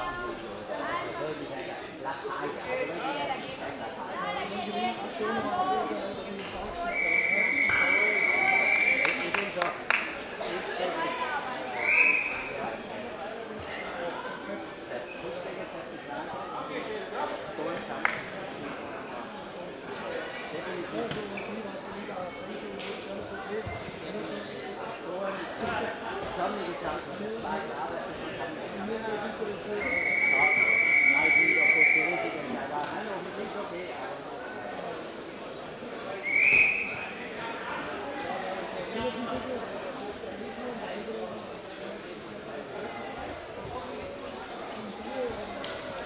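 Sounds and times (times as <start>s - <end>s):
referee whistle blast: 6.9s - 9.2s, 29.8s - 32.2s, 36.3s - 37.0s.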